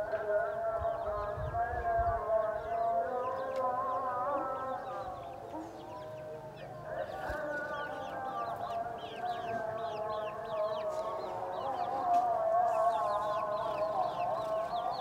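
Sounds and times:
chicks peeping: 0.0 - 15.0.

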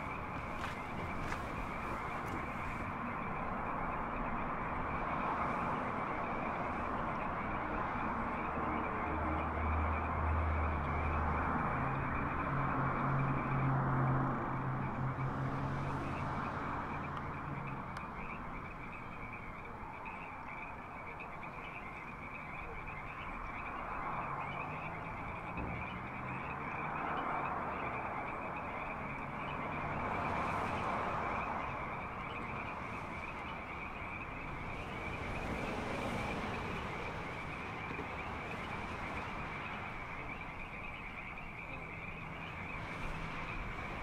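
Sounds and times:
chorus of night-calling animals: 0.0 - 44.0
distant highway traffic: 0.0 - 44.0.

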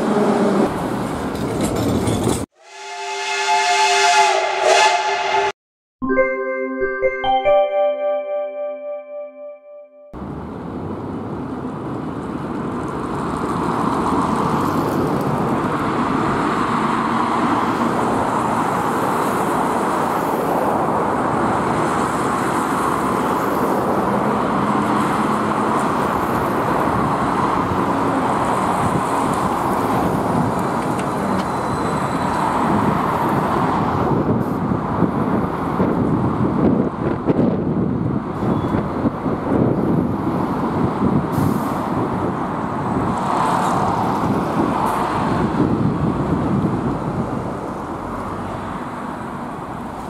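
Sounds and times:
tyres on asphalt: 0.0 - 2.6, 10.2 - 50.0
electric trolleybus pulling up: 10.2 - 50.0.

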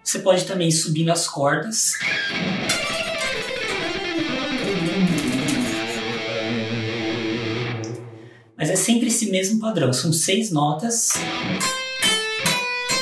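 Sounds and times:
electric guitar fast picked run: 2.0 - 8.4.

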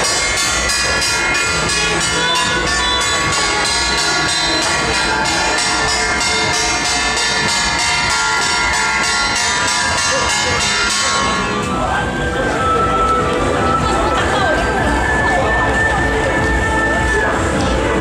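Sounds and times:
brass gongs and cymbals beating: 0.0 - 14.0.

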